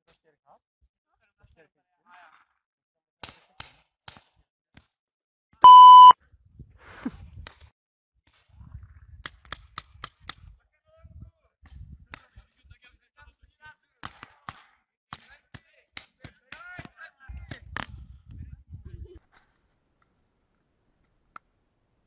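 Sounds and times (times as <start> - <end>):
loud electronic beep: 5.6 - 6.1.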